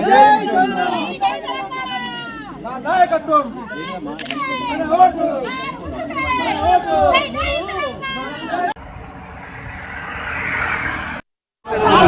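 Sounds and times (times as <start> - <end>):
road traffic noise: 5.4 - 12.0
vehicle approaching: 8.8 - 12.0.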